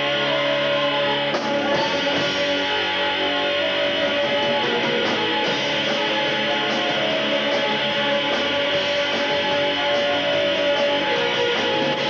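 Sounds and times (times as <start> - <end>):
drums: 0.0 - 12.0
electric guitars strummed: 0.0 - 12.0
keyboard: 0.0 - 12.0.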